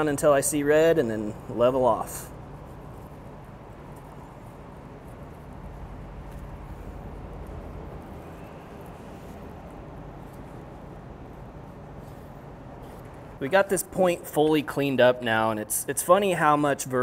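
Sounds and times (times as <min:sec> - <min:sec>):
low room noise: 0:00.0 - 0:17.0.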